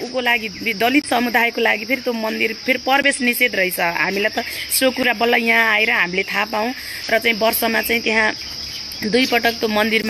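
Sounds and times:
insects droning: 0.0 - 10.0
woman talking: 0.0 - 10.0.

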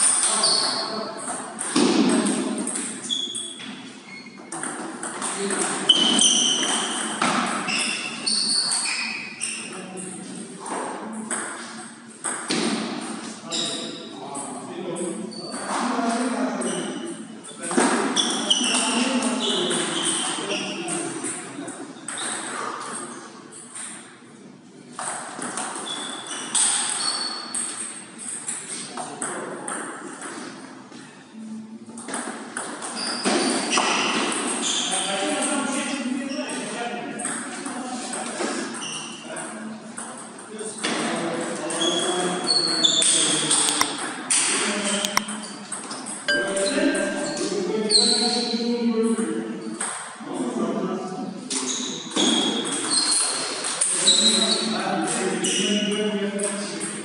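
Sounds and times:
table tennis ball pinging: 46.3 - 47.5.

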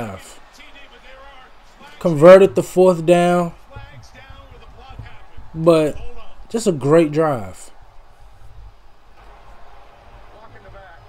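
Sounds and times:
man's tv commentary: 0.0 - 7.8, 10.2 - 11.0.

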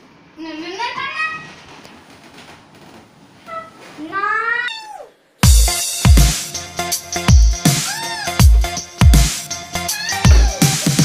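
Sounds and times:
cat meowing: 3.5 - 5.2, 9.9 - 10.8.

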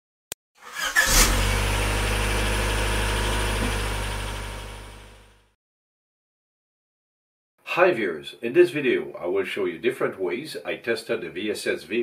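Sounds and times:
car engine starting: 0.6 - 5.4.

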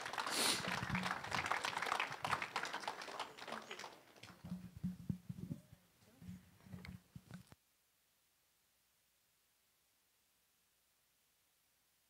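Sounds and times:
crowd applauding: 0.0 - 4.7.

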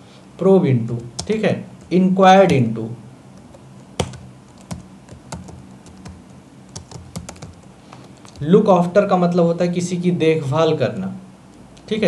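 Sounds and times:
typing on computer keyboard: 1.1 - 1.9, 3.4 - 8.4.

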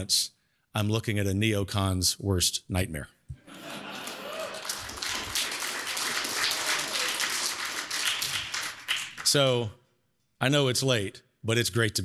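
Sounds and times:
audience applauding: 3.5 - 9.6.

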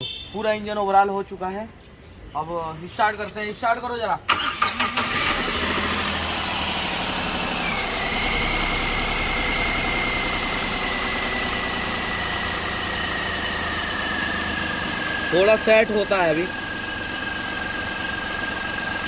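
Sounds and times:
car engine idling: 4.4 - 19.0.

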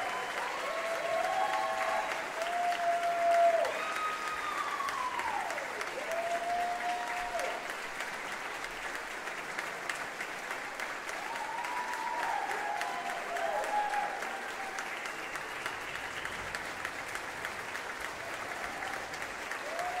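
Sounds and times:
drawn-out cheers: 0.0 - 7.7, 11.1 - 16.7, 18.2 - 20.0
audience applauding: 0.0 - 20.0.

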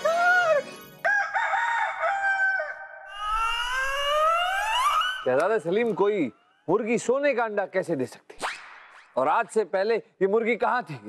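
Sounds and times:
rooster crowing: 1.0 - 5.3
rising whistle-like glide: 3.1 - 5.8.

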